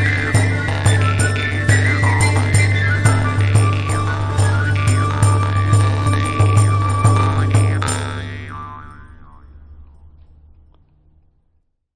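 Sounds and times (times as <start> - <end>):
jaw harp note ringing: 0.0 - 10.0.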